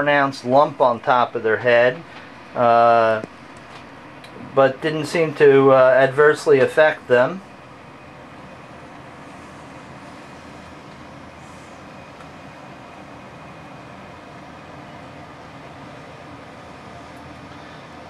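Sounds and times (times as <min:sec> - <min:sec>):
low hum and hiss: 0:00.0 - 0:18.0.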